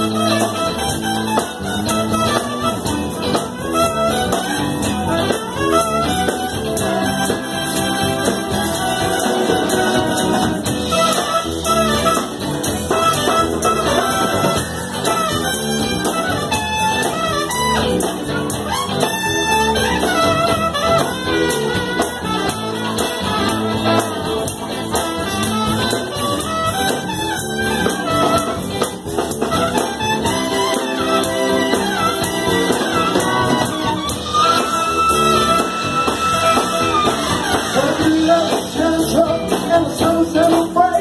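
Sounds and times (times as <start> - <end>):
brass horns playing: 0.0 - 38.8
drums: 0.0 - 41.0
electric guitar: 0.0 - 41.0.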